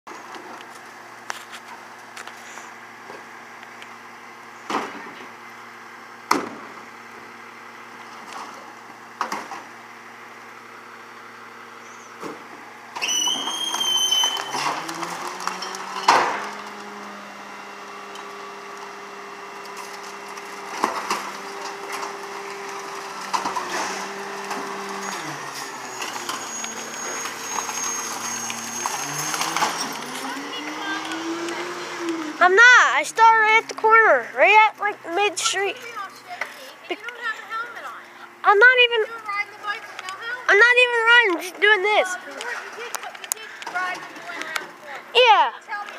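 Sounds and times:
hydraulic whine: 2.2s - 36.7s
truck diesel engine idling: 16.2s - 45.9s.

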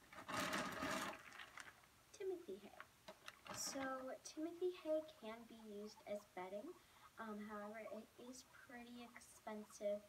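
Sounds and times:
plastic bag rustling and crinkling: 0.0s - 1.9s, 3.1s - 4.0s.

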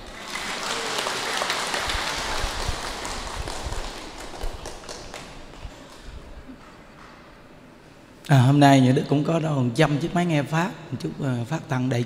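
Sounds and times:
audience applauding: 0.0s - 7.2s.

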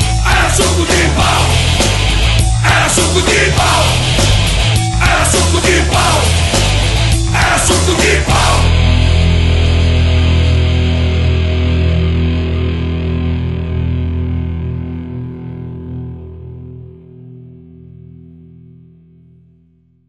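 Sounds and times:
distorted electric guitar chord ringing: 0.0s - 19.4s.

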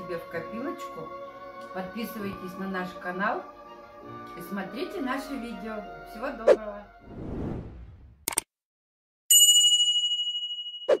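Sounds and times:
notification bell ding: 9.3s - 11.0s.

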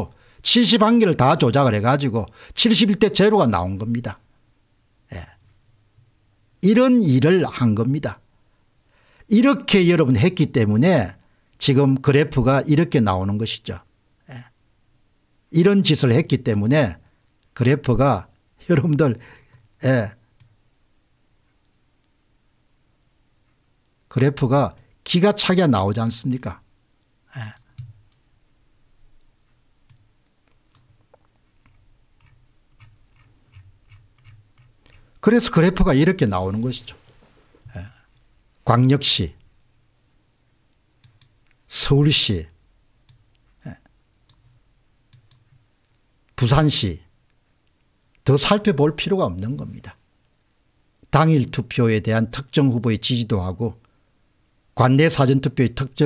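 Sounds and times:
spoken word: 5.1s - 5.4s, 14.2s - 14.6s, 27.3s - 27.7s, 37.7s - 38.1s, 43.6s - 43.9s.

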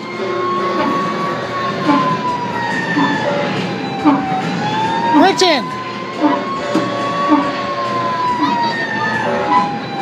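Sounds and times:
electronic fire engine siren wail: 0.0s - 10.0s.

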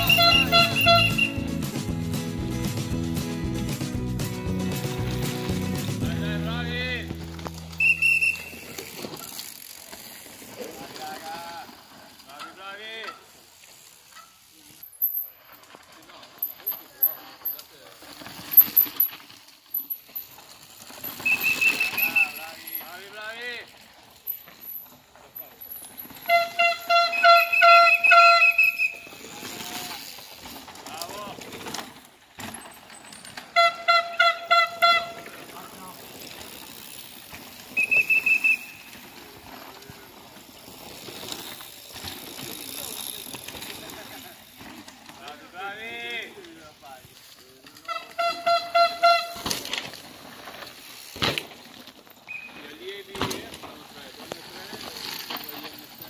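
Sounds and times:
whistles blowing: 0.0s - 1.5s, 7.6s - 8.8s, 21.2s - 22.5s, 26.4s - 29.2s, 37.6s - 39.0s, 52.3s - 52.6s.

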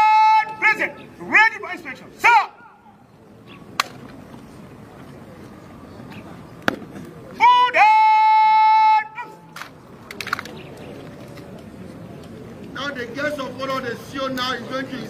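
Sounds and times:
person shouting a command: 0.0s - 2.9s, 7.4s - 9.5s.

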